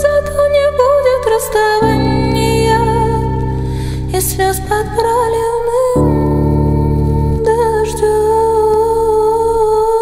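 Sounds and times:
soft accompaniment: 0.0 - 10.0.

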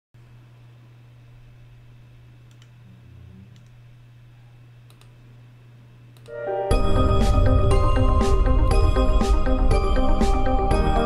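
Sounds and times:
faint low hum: 0.2 - 6.3
faint short clicks: 2.5 - 2.8, 4.8 - 5.2.

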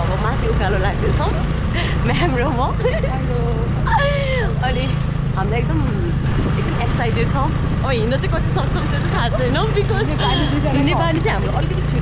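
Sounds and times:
women talking: 0.0 - 12.0.

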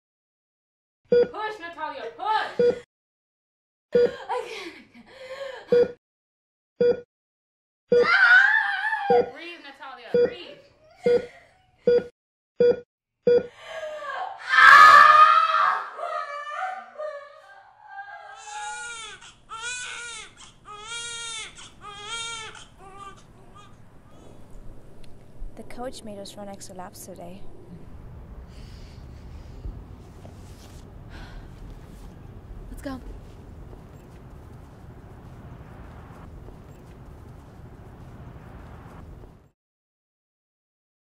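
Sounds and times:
newborn baby crying: 16.3 - 23.8
outdoor background rumble: 22.6 - 39.5.

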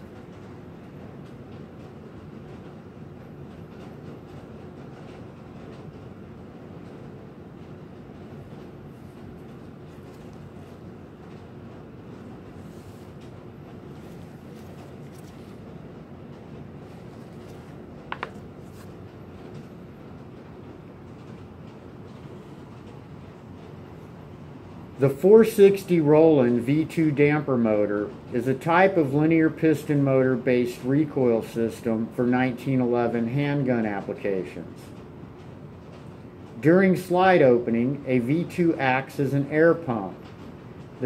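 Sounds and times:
low background hum and rumble: 0.0 - 41.0.

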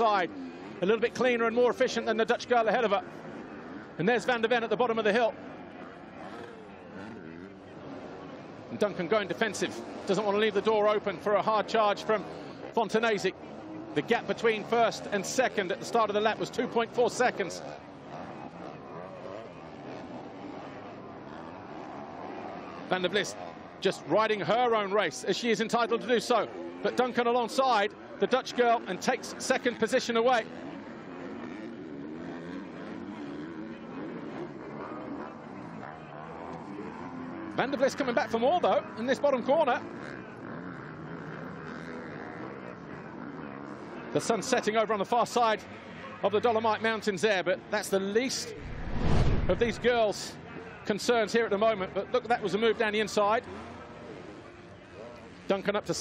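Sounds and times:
motocross bike engines revving: 0.0 - 50.6, 51.2 - 56.0.

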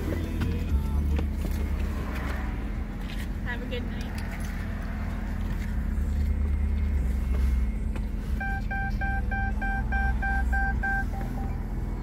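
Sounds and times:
diesel engine idling: 0.0 - 12.0
warning chime beeping: 8.4 - 11.6.

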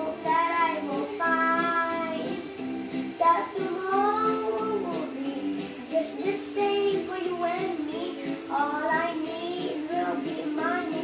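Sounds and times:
boy singing: 0.0 - 2.4, 3.2 - 11.0
karaoke backing track: 0.0 - 11.0.

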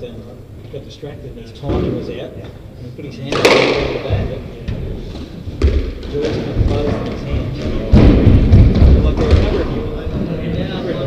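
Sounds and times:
people talking: 0.0 - 5.4, 6.0 - 11.0
squash ball knock: 3.3 - 4.2, 5.5 - 9.7
heavy thuds on wooden floor: 5.5 - 9.7.

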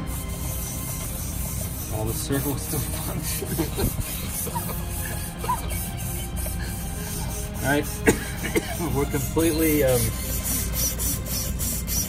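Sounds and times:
background music: 0.0 - 12.0
burning wire hissing: 0.0 - 12.0.

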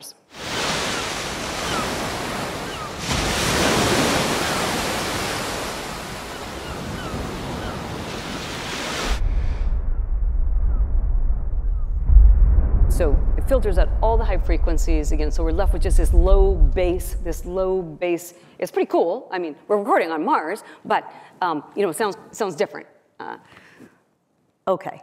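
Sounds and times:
ocean waves rushing: 0.0 - 17.6
low muffled bass rumble: 9.2 - 17.9.

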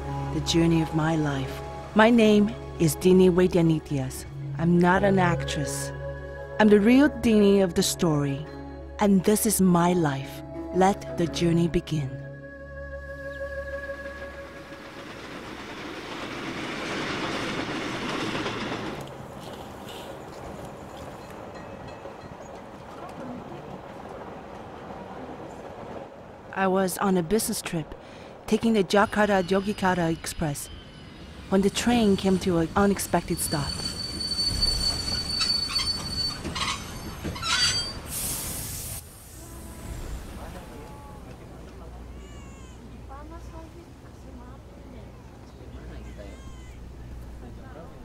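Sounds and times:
electric train passing: 13.1 - 42.1
wheels clacking on rails: 13.7 - 26.6, 28.5 - 38.2
train brakes squealing: 29.1 - 38.6
air hiss: 38.0 - 40.3.

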